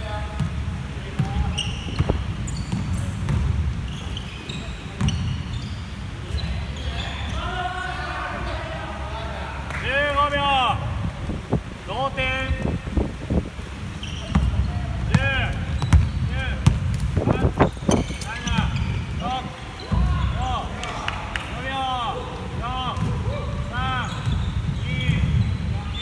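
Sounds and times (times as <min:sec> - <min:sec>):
sneaker squeaks: 0:01.2 - 0:08.8, 0:13.7 - 0:20.6, 0:22.9 - 0:26.0
basketball bouncing on wooden floor: 0:14.2 - 0:18.8.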